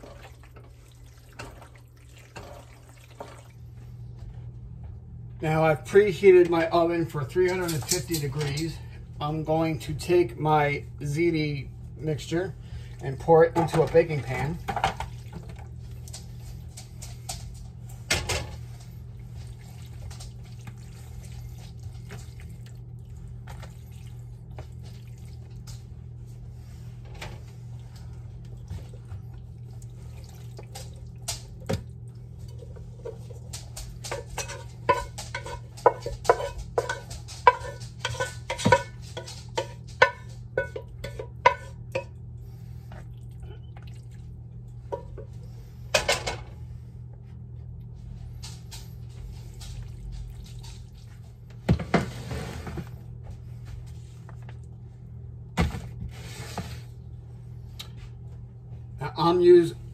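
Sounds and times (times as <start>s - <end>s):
low steady hum: 0.0s - 59.9s
wooden spoon scraping a pot: 34.1s - 42.1s, 51.8s - 53.0s, 56.0s - 57.0s.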